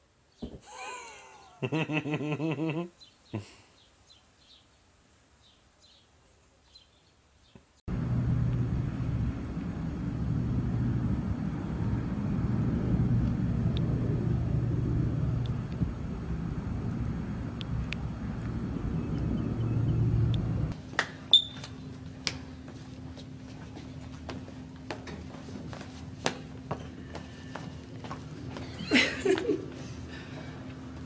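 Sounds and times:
low rumble: 7.9 - 20.8
faint hum: 7.9 - 31.0.

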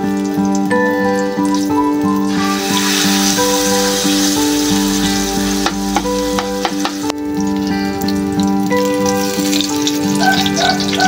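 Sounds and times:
background music: 0.0 - 11.0
omelette sizzling in a frying pan: 1.4 - 7.0.

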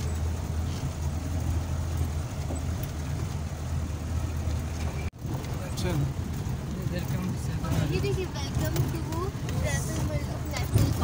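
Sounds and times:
vehicle rumbling on gravel: 0.0 - 11.0
people talking: 6.8 - 11.0.

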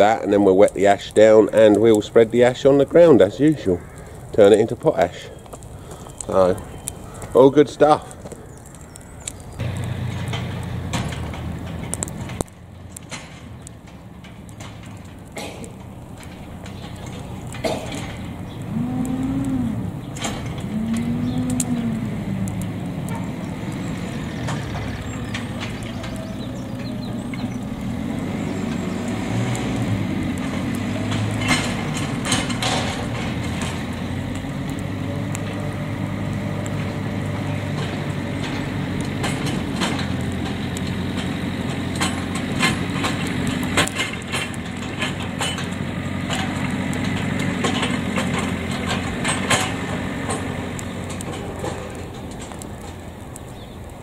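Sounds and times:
burning straw crackling and popping: 0.0 - 54.0
diesel engine running: 9.1 - 54.0.

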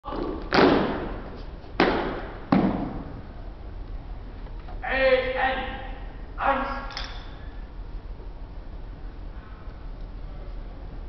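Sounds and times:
hits on wooden floor echoing: 1.8 - 3.1.

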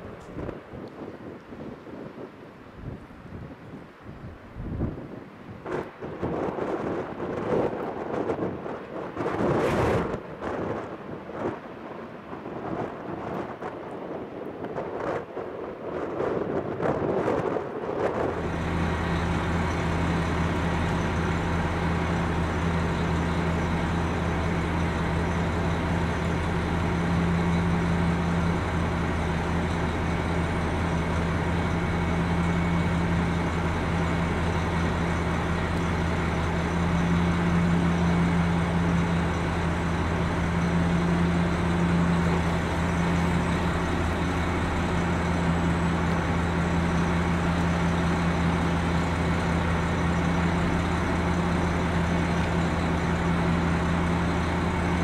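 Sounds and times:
diesel railcar engine idling: 0.0 - 0.7, 18.3 - 55.0.

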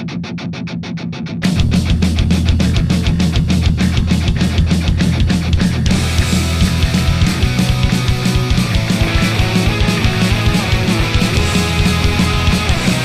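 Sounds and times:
electric guitar strumming: 0.0 - 13.0
punk rock band playing: 0.0 - 13.0.

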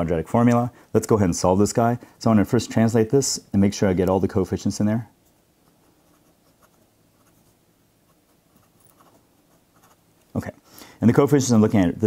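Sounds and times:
person speaking: 0.0 - 7.4, 8.5 - 12.0
pencil writing on paper: 5.6 - 10.0.

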